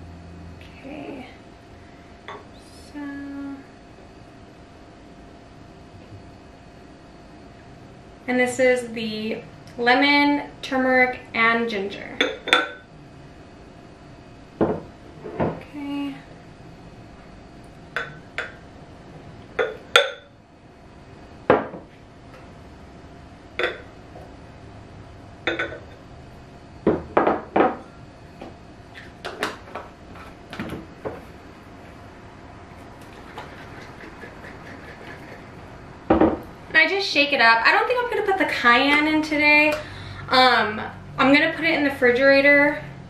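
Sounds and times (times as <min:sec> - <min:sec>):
glass cup tapping glass bottles: 0:23.6 - 0:23.9, 0:25.5 - 0:25.8.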